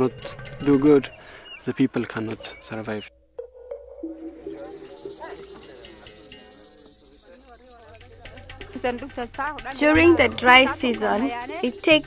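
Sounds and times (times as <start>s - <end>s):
soft music: 0.0s - 12.0s
steady hiss: 4.5s - 8.8s, 10.5s - 12.0s
faint voices: 4.5s - 12.0s.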